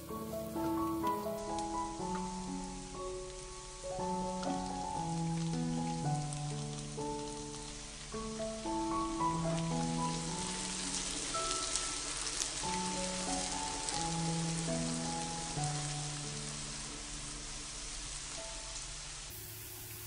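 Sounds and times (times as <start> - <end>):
slow background music: 0.0 - 19.4
pancakes sizzling in hot oil: 0.0 - 20.0.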